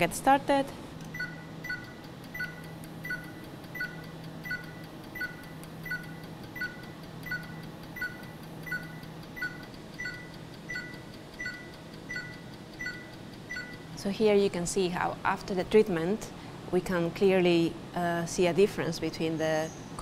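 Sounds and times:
laser pulses with beeps and clicks: 1.1 - 14.0.

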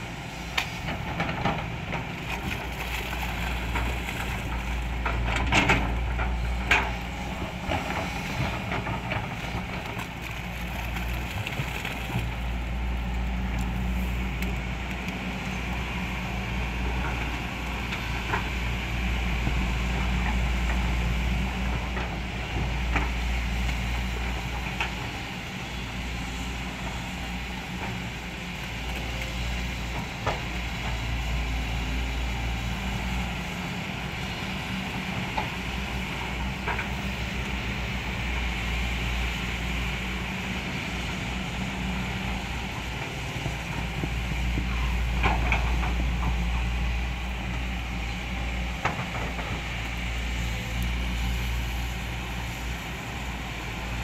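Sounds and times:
excavator diesel engines droning: 0.0 - 54.0.

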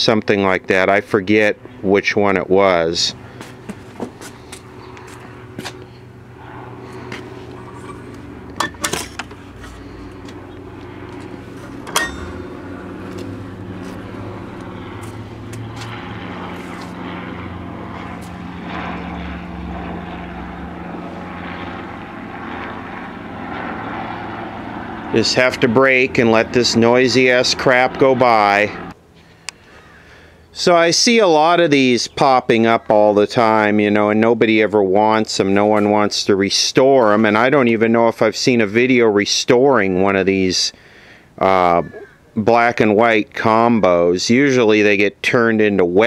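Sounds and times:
airplane engine droning overhead: 0.0 - 46.0.

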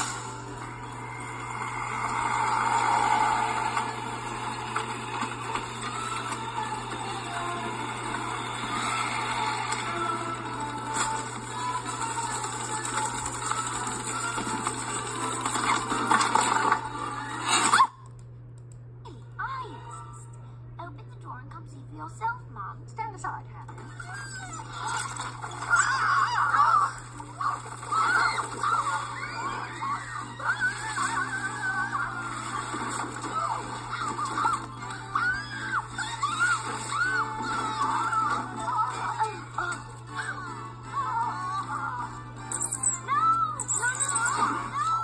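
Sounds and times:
film soundtrack music: 0.0 - 17.7, 24.7 - 45.0
cartoon machine whirring and clattering: 0.0 - 17.9, 23.6 - 45.0
voices crying out in wavering pitches: 23.8 - 39.4, 40.0 - 45.0.

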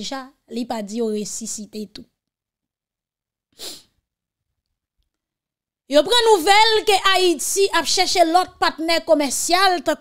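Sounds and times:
sharp breath drawn in: 3.6 - 4.0.

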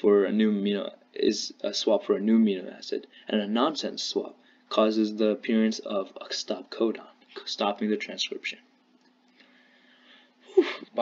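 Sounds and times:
person breathing in: 9.3 - 10.4.

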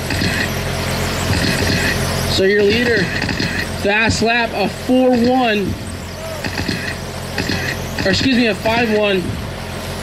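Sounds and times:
rc car motors whining: 0.0 - 9.1
steady low hum: 0.0 - 10.0.

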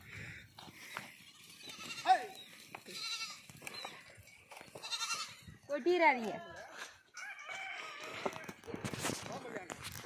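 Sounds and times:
goats bleating: 1.4 - 3.9, 4.5 - 5.5.

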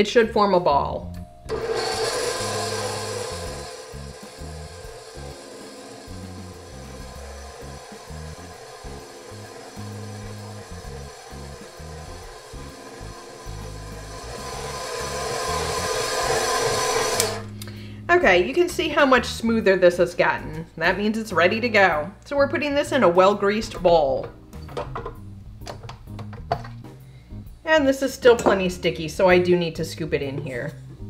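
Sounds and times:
stand mixer motor hum: 1.5 - 17.5
background music with bass line: 2.5 - 19.5, 23.7 - 27.7.

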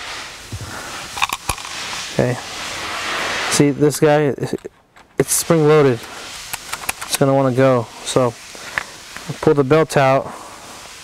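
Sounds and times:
sharp clicks: 6.5 - 7.2.

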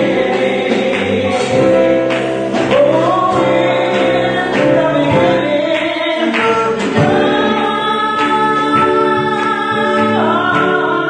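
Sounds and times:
live band playing: 0.0 - 11.0
woman singing gospel: 0.0 - 11.0.

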